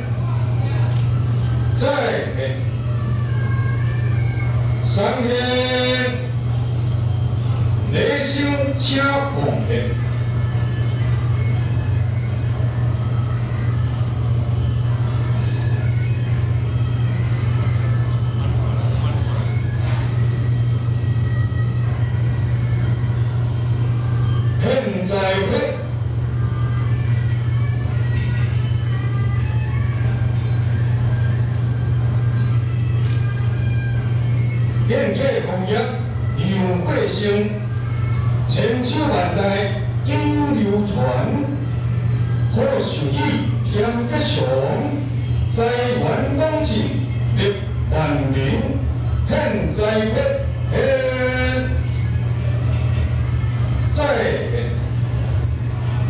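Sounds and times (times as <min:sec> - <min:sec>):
faint voices: 0:00.0 - 0:56.0
low electrical hum: 0:00.0 - 0:56.0
man chanting: 0:42.5 - 0:51.9.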